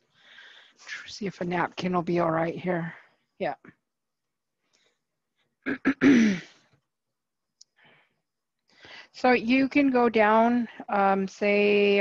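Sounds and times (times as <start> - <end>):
soft breath: 0.0 - 1.1, 7.7 - 9.2
faint click: 7.6 - 7.8.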